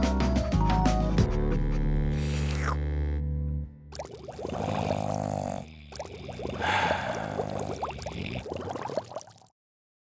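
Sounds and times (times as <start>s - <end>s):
hot tub water bubbling: 6.0s - 9.5s.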